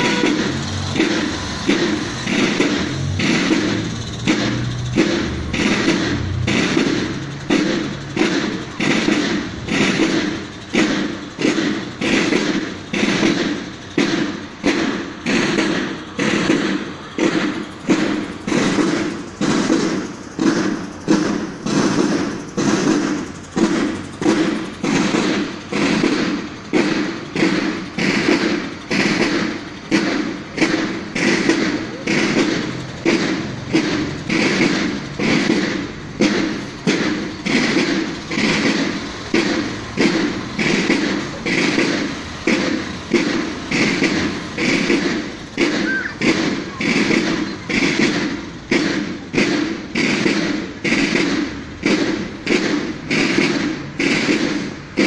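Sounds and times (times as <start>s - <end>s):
drums beating a march cadence: 0.0s - 55.0s.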